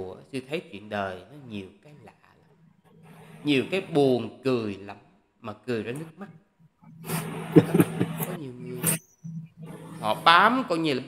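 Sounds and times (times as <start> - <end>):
man laughing: 7.0 - 8.4.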